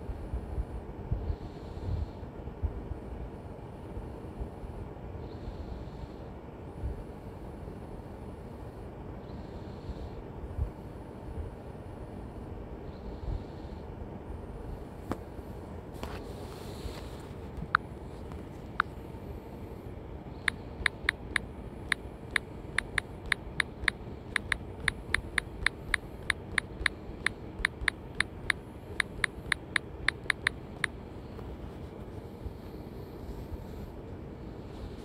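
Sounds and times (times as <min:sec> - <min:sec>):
low background rumble: 0:00.0 - 0:35.0
phone keyboard clicks: 0:20.4 - 0:31.0.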